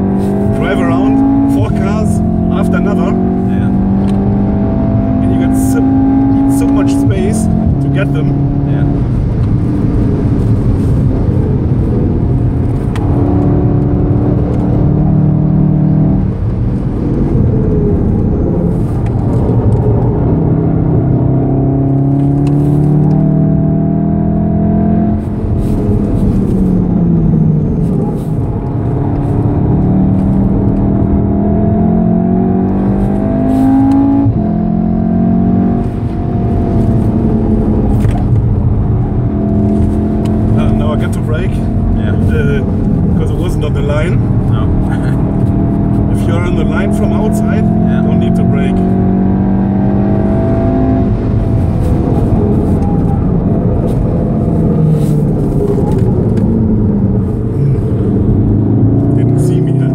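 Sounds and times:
car engine pulling hard: 0.0s - 59.9s
tyre and road noise: 0.0s - 59.9s.

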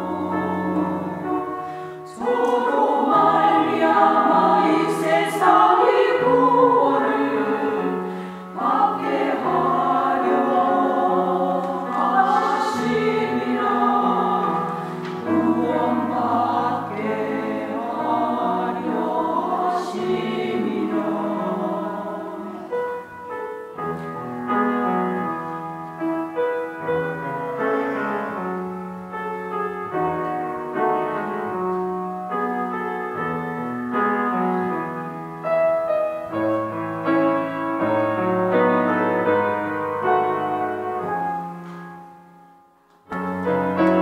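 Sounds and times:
women's choir singing a hymn: 0.0s - 23.1s, 27.5s - 28.8s, 43.1s - 44.0s.

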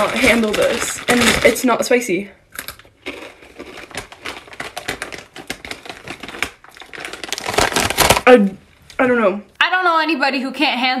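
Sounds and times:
tortilla chip crunching: 2.6s - 8.3s.

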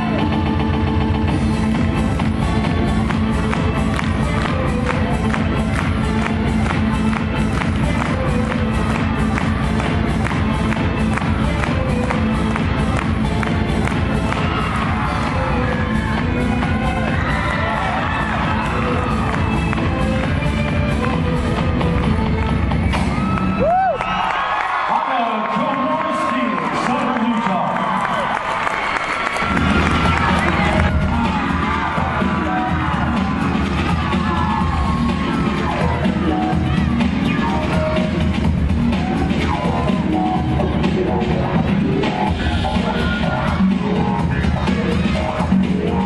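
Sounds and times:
music with steady beat over speakers: 0.0s - 24.0s, 29.3s - 46.0s
crowd cheering and whooping: 13.9s - 20.5s, 22.7s - 38.0s, 38.8s - 39.9s.

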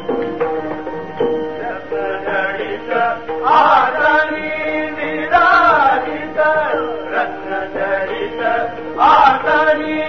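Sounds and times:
person singing devotional chant: 1.6s - 10.0s.

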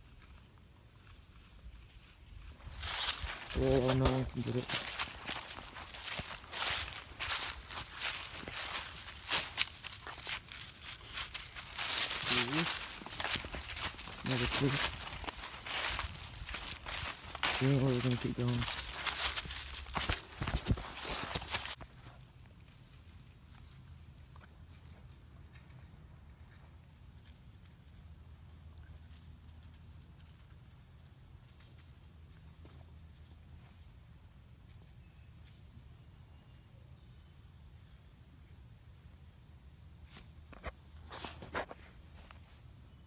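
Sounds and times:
footsteps crunching dry leaves: 1.9s - 21.8s.

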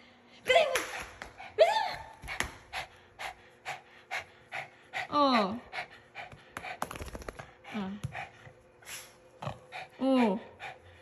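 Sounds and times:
dog panting: 2.3s - 11.0s.

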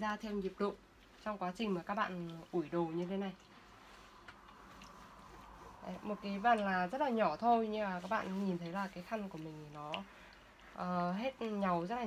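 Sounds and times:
fabric rustling: 3.6s - 9.4s.

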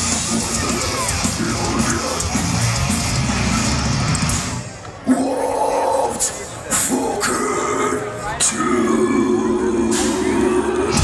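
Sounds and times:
live metal band playing loud: 0.0s - 8.1s, 8.8s - 11.0s.

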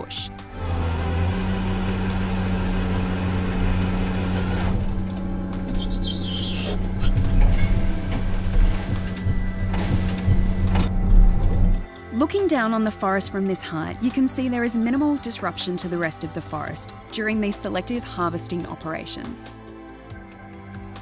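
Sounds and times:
harvester engine and hydraulics: 0.4s - 11.9s
heavy low knocks: 6.8s - 11.9s.

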